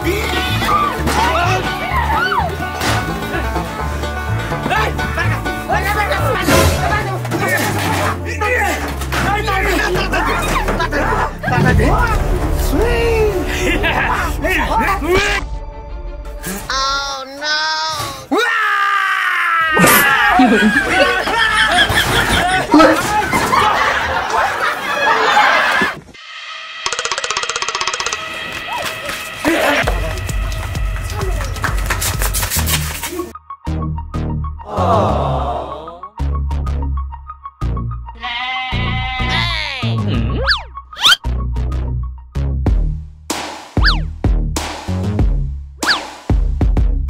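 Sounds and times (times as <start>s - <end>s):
background music with low beat: 27.8s - 34.6s, 39.8s - 47.0s
wavering comic sound effect: 39.2s - 41.2s, 43.8s - 44.1s.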